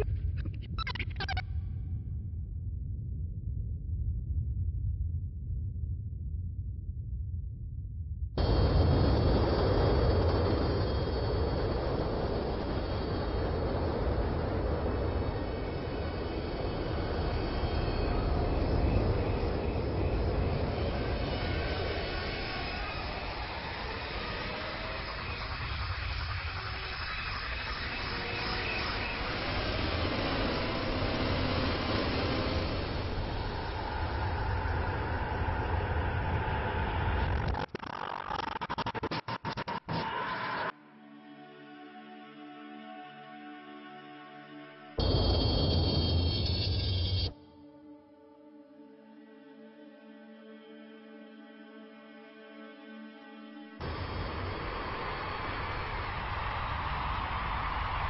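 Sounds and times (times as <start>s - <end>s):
deep rumbling hum: 0.0s - 22.2s.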